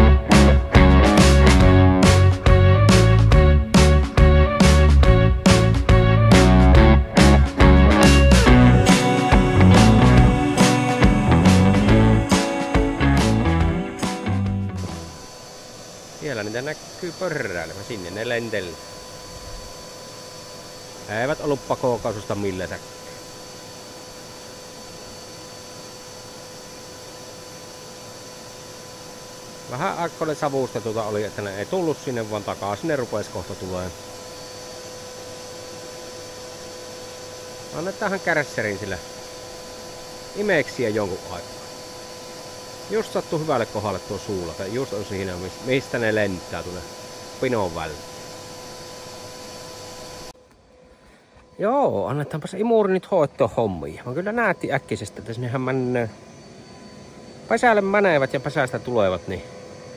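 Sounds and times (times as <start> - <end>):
vacuum cleaner running: 0.0 - 59.9.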